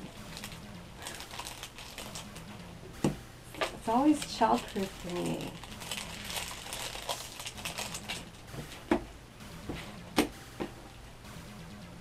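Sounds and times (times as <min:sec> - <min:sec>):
packaging crinkling and rustling: 0:00.0 - 0:02.2, 0:03.6 - 0:08.4.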